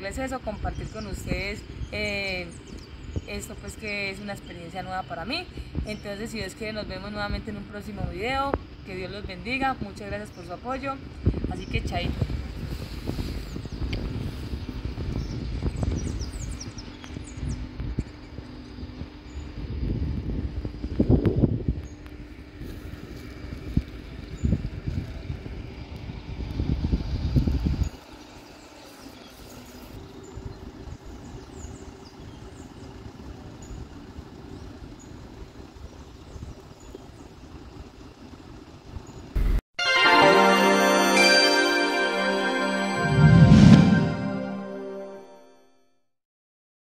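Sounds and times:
wind buffeting microphone: 11.0s - 22.7s, 23.3s - 28.2s.

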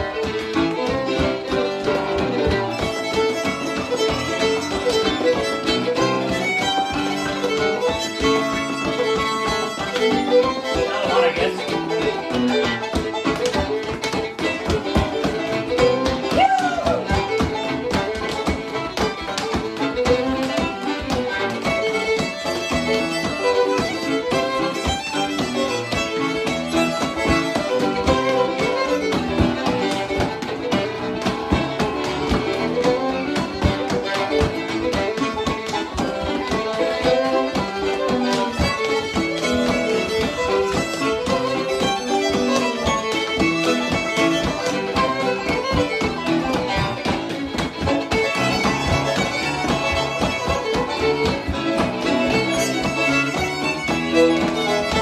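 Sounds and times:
fiddle playing fast dance tune: 0.0s - 55.0s
piano accompaniment: 0.0s - 55.0s
stepdancing shoes tapping on wood: 0.0s - 55.0s.

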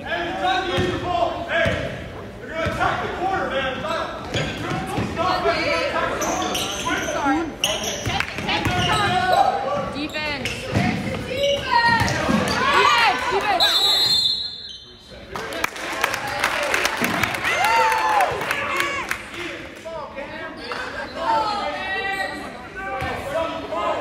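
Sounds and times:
sneakers squeaking: 3.7s - 15.2s
referee's whistle: 13.6s - 15.0s.

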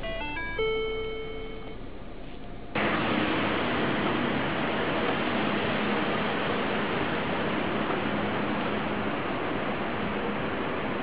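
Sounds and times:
dashboard chime: 0.0s - 1.8s.

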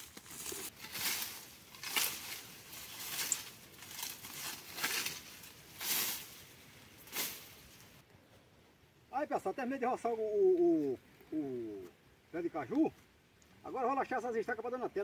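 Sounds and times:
brush hook slashing dry grass: 0.0s - 7.8s.

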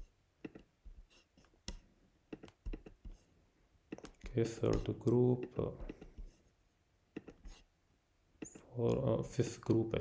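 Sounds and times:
computer mouse clicking: 0.4s - 0.7s, 1.4s - 3.1s, 3.9s - 6.2s.

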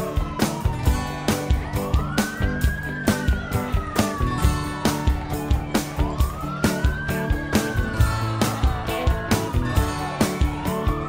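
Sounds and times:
music with steady drumbeat: 0.0s - 11.0s
siren wailing: 0.0s - 11.0s.

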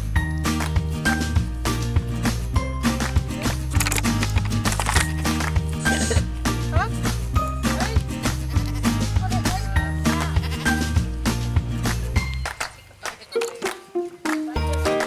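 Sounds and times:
background music with steady beat: 0.0s - 15.0s
goat bleating: 8.3s - 11.0s.

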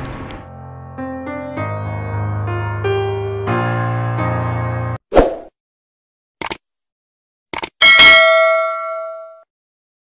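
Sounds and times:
quick double clicks: 6.4s - 6.6s, 7.5s - 7.8s
bell ding: 7.8s - 9.5s.

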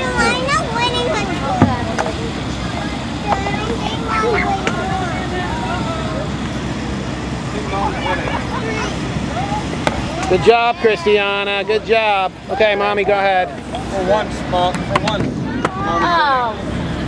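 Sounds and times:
distant voices: 0.0s - 17.0s
steady low rumble: 0.0s - 17.0s.

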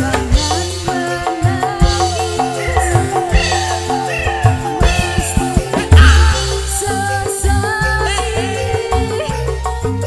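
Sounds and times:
live band music: 0.0s - 10.0s.

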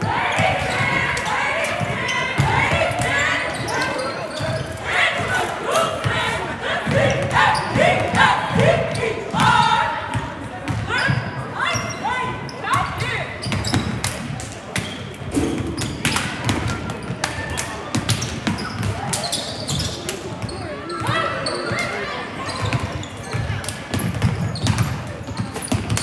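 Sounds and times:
voices in background: 0.0s - 26.0s
basketballs bouncing on hardwood floor: 24.0s - 24.9s.

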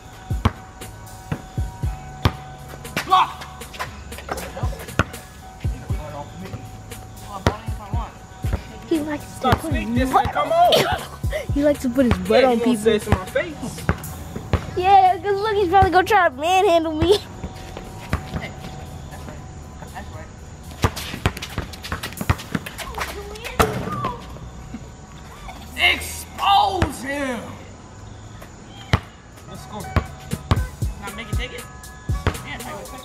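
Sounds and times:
quiet music beat: 0.0s - 23.8s, 29.4s - 33.0s
basketball bouncing on concrete: 0.3s - 0.6s, 1.3s - 6.6s, 7.3s - 10.6s, 11.2s - 16.2s, 16.8s - 19.9s, 20.7s - 24.3s, 26.8s - 27.0s, 28.7s - 29.2s, 29.8s - 32.7s.

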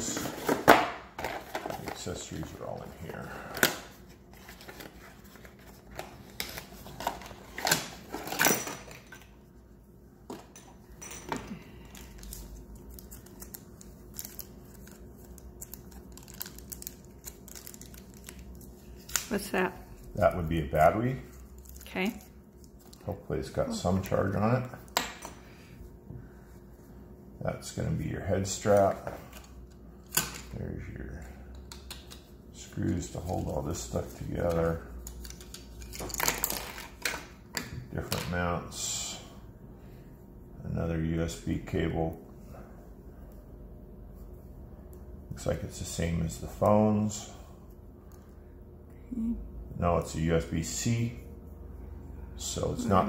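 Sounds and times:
plastic packaging crinkling: 12.0s - 19.4s.

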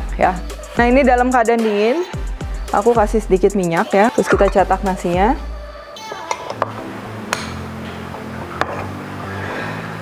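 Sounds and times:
background music: 0.0s - 10.0s
metal spoon clinking glass bowl: 4.1s - 4.8s.

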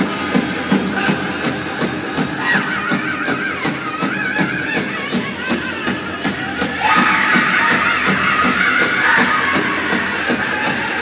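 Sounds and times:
large drum steady beat: 0.0s - 11.0s
high-pitched group singing: 2.3s - 11.0s.

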